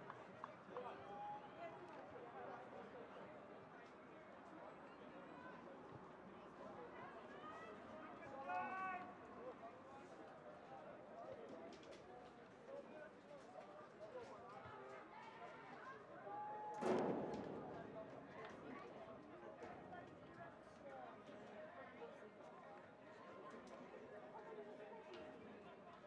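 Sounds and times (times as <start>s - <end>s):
people calling and chattering: 14.1s - 26.0s.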